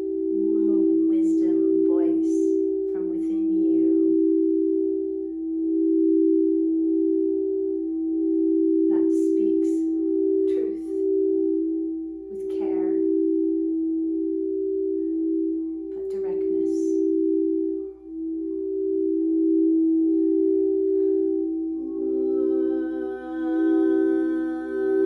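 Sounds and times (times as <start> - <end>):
singing bowls ringing: 0.0 - 25.0.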